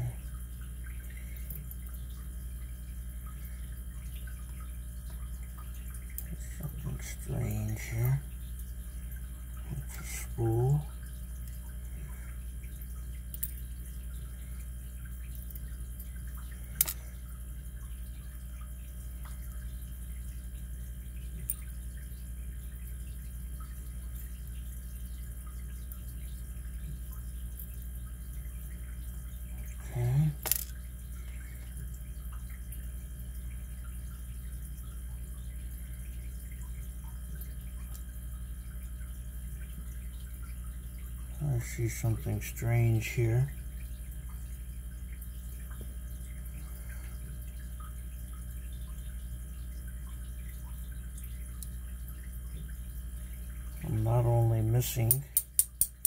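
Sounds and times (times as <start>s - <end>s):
low background hum: 0.0s - 56.0s.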